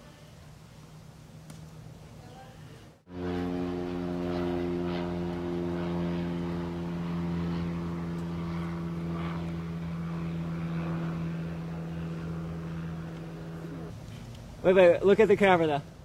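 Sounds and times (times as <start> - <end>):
engine running steadily: 3.1 - 14.6.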